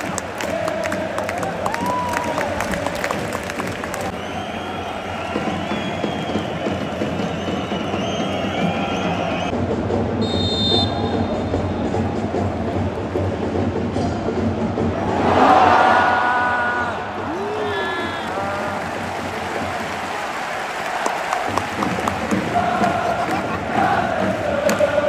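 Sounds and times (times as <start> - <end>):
stadium crowd chanting: 0.0 - 6.2, 15.0 - 25.0
crowd clapping: 0.0 - 9.3, 17.6 - 25.0.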